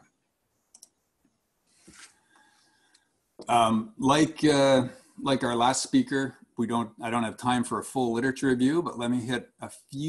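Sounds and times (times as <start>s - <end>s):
faint computer clicks: 0.7s - 1.0s.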